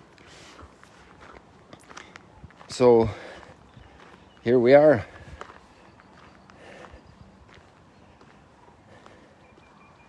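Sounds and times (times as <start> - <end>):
footsteps on dry dirt: 0.0 - 10.0.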